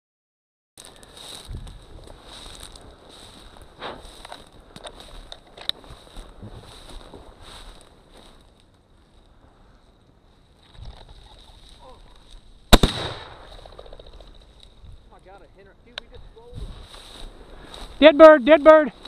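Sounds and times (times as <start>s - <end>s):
shotgun shot with echo: 12.7s - 13.7s.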